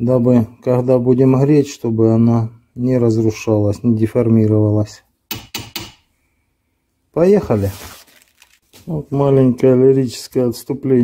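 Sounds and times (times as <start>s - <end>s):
metal hammer tapping steel vise: 5.3s - 6.1s.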